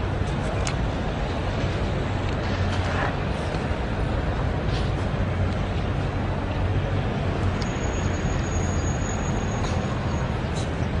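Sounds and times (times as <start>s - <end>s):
city traffic rumble: 0.0s - 11.0s.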